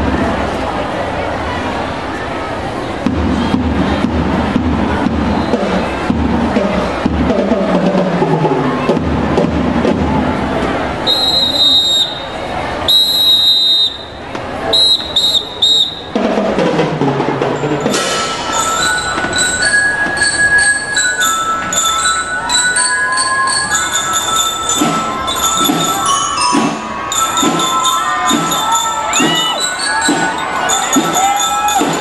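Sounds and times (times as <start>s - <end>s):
drum tapping a steady beat: 3.0s - 10.8s, 16.1s - 32.0s
whistle blasts: 11.0s - 16.2s, 24.4s - 32.0s.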